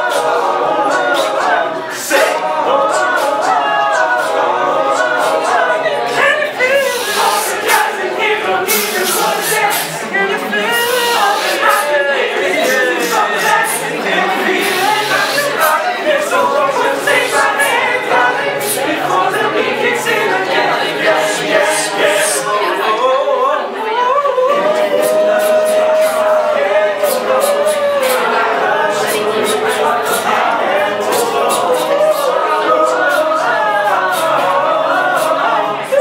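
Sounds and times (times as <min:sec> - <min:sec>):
vocal group singing a cappella: 0:00.0 - 0:36.0.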